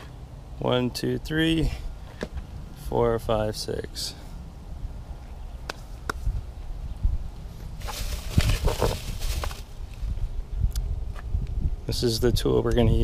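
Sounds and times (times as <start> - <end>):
rustling: 7.5 - 10.1.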